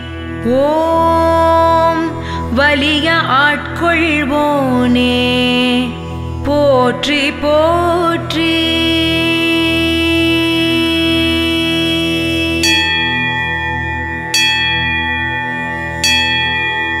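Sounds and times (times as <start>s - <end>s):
low drone: 0.0s - 17.0s
long held note: 11.7s - 17.0s
bell strikes ringing: 12.6s - 17.0s.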